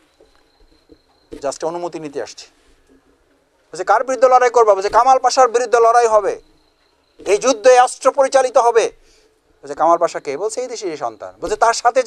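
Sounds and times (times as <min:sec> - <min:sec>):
man speaking loudly: 0:03.8 - 0:06.4, 0:07.3 - 0:09.0.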